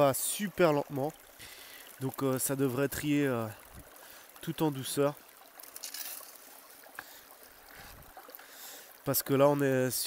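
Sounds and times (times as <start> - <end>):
water running through sluice box: 0.0 - 10.0.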